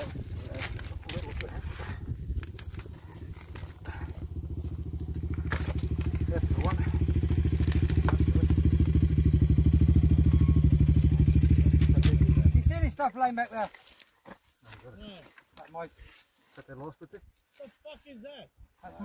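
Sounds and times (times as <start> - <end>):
motorcycle engine idling: 0.0 - 13.0.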